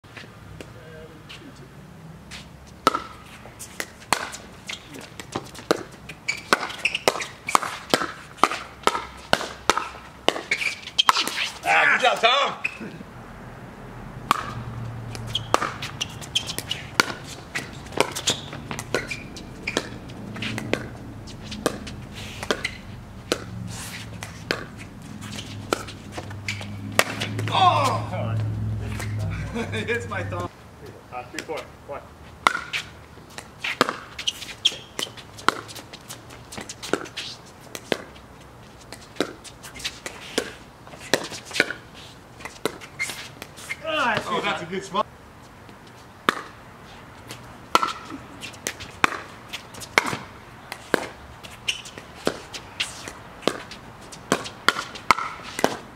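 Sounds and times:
players' voices: 4.3 - 5.3, 11.2 - 13.1, 23.7 - 32.1, 43.6 - 45.1.

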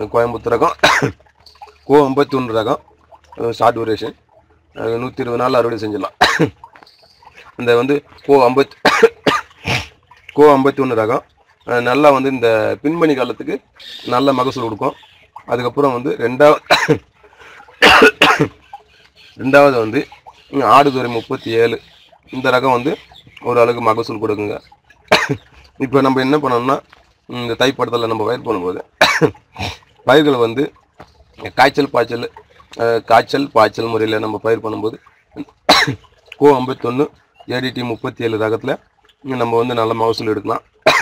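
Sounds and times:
man talking: 0.0 - 1.1, 1.8 - 2.8, 3.4 - 6.6, 7.4 - 9.4, 10.3 - 17.0, 19.4 - 30.8, 31.4 - 41.0
man coughing: 0.8 - 1.2, 6.2 - 6.5, 8.8 - 9.9, 16.7 - 17.0, 17.8 - 18.6, 25.1 - 25.4, 29.0 - 29.8, 35.7 - 36.0.

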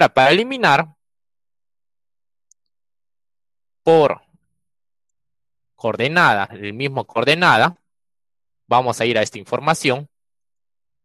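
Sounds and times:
man's voice: 0.0 - 0.9, 3.9 - 4.2, 5.8 - 7.8, 8.7 - 10.1.

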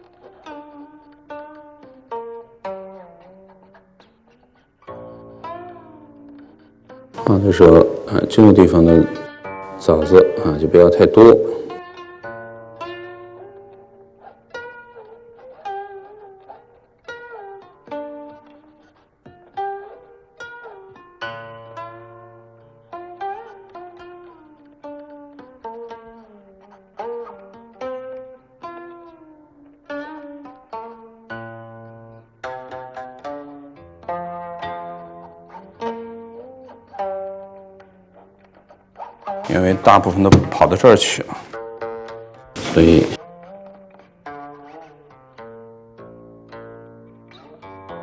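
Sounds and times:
plucked zither notes: 0.0 - 48.0.

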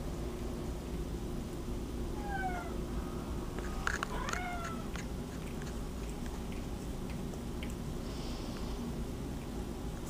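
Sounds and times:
cat meowing: 2.2 - 2.8, 4.0 - 4.9.

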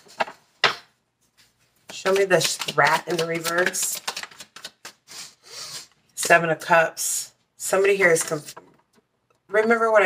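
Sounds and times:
cards shuffled by hand: 1.4 - 5.3.

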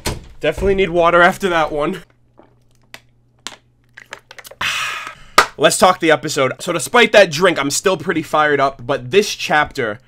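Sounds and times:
plastic bottle crackling: 2.0 - 5.6
person gulping: 2.1 - 5.2.

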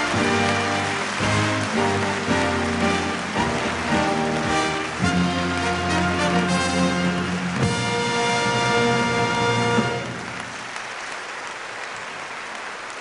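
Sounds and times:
orchestra playing: 0.0 - 10.8
audience applause: 0.0 - 13.0.

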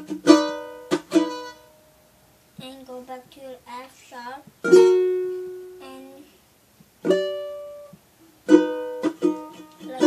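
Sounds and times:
ukulele chord strums: 0.0 - 2.1, 4.6 - 5.9, 6.9 - 10.0.

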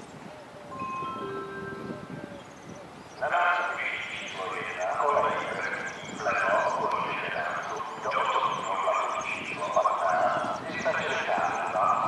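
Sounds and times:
indistinct voices talking: 3.2 - 12.0.

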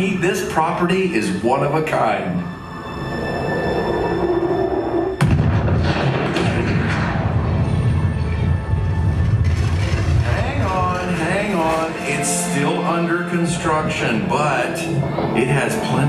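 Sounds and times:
film soundtrack music: 0.0 - 16.0
deep steady rumble: 2.4 - 12.1
loud boom: 5.2 - 11.2.

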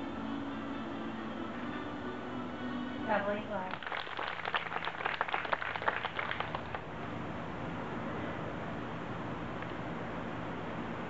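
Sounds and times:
audience applauding: 3.7 - 6.8.

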